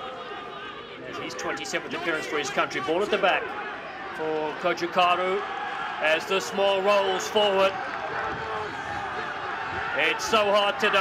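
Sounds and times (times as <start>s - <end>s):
crowd hubbub and shouts: 0.0s - 11.0s.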